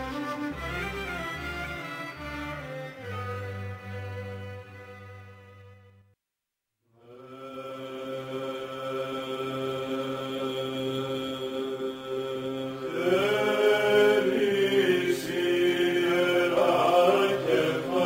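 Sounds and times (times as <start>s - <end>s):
chanting over held drone: 7.0s - 18.0s.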